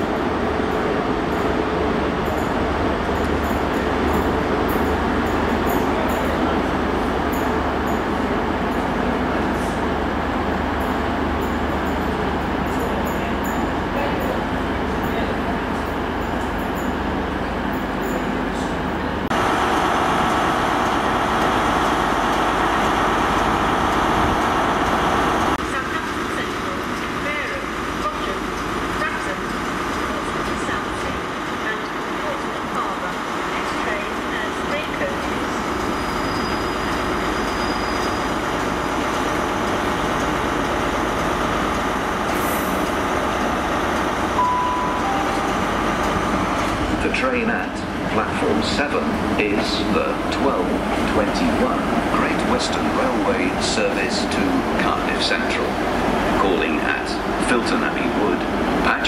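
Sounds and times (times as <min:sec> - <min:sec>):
trains running: 0:00.0 - 0:59.0
voices on platform: 0:23.3 - 0:35.7, 0:44.4 - 0:59.0
short single-pitch beep: 0:44.4 - 0:45.7.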